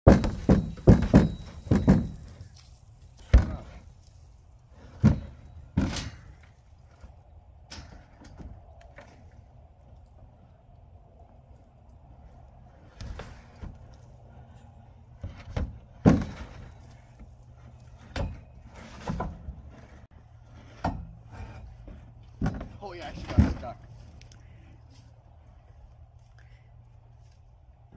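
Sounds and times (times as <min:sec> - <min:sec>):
feed trough thudding and knocking: 0:00.1 - 0:02.3, 0:15.2 - 0:16.6.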